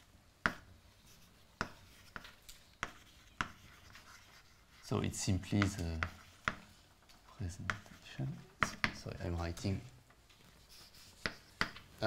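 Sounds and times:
chalk tapping and scraping on board: 0.4 - 6.9, 7.5 - 9.2, 10.5 - 11.9.

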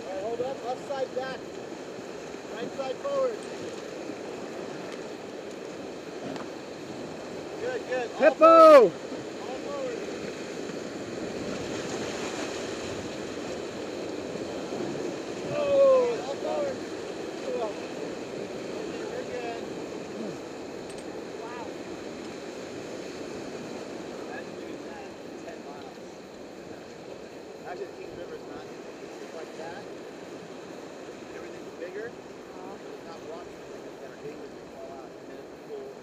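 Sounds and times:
whitewater rapids rushing: 0.0 - 35.5
person shouting: 8.2 - 8.9, 15.5 - 16.2.

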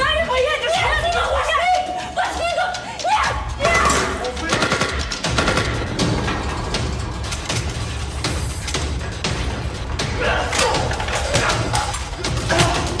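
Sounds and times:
deep steady music score: 0.0 - 13.0
rapid gunfire: 3.8 - 6.1.

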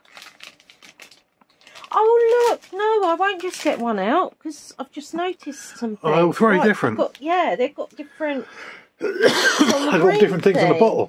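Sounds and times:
plastic pouch crinkling: 0.0 - 4.2.

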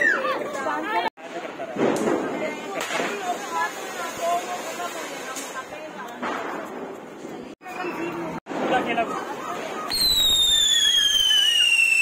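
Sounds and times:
firework hissing sparks: 2.1 - 6.0, 9.9 - 12.0
shrill firework whistle: 9.9 - 12.0.

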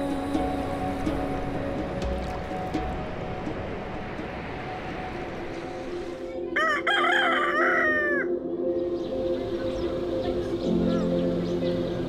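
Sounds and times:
rooster crowing: 6.6 - 8.4.

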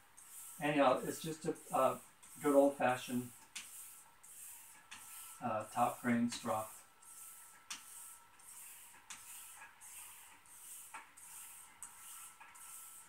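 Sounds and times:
razor swishing on strop: 0.1 - 13.0.

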